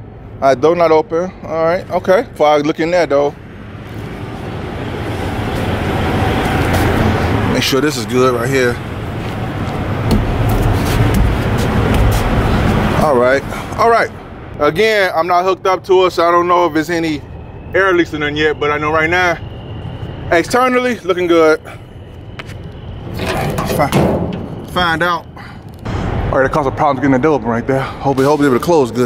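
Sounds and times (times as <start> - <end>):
metal door clank: 23.1 - 25.0
metal door rattling scrape: 23.1 - 25.1.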